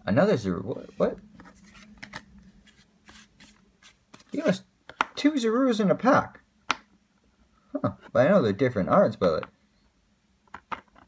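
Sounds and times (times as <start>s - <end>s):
trading cards rustling and tapping: 1.0s - 5.2s.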